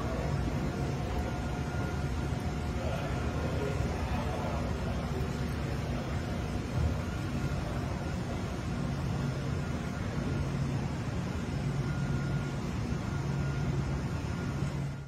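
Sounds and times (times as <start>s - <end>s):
fans and cooling whoosh: 0.0s - 15.0s
machinery hum: 0.0s - 15.0s.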